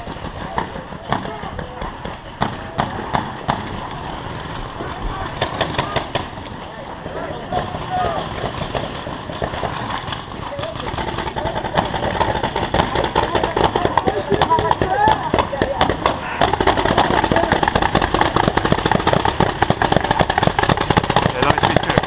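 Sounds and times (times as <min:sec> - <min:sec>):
players shouting: 0:00.0 - 0:21.9
paintball markers firing: 0:00.0 - 0:22.0.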